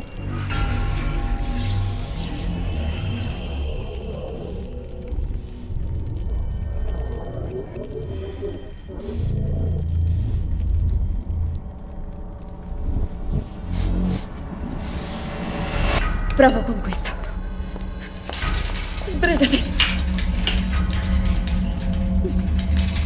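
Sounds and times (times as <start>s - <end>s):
deep low rumble: 0.0s - 23.0s.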